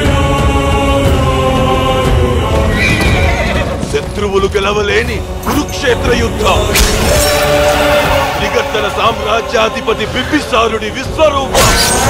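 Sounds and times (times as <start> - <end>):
dramatic film score: 0.0 - 12.0
horse whinnying: 2.7 - 3.8.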